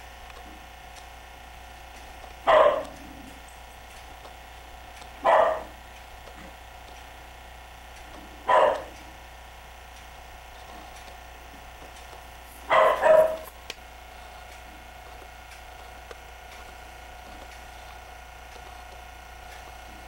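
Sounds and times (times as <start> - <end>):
dog barking: 2.4 - 3.4, 5.2 - 5.8, 8.4 - 9.1, 12.6 - 13.6.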